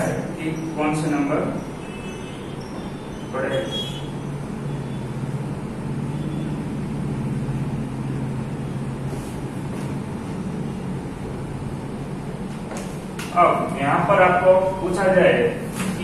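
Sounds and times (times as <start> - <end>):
room noise hum: 0.0 - 16.0.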